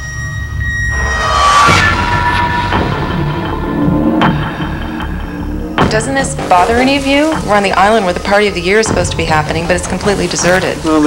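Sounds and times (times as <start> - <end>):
sharp hits: 0.0 - 10.6
low rumble: 0.0 - 10.9
sustained trailer drone: 0.0 - 11.0.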